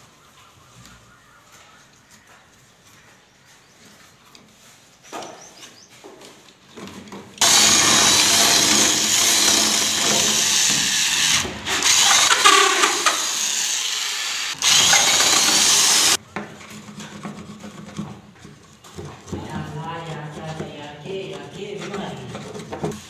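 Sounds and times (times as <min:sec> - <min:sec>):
electric drill boring wood: 0:07.4 - 0:16.2.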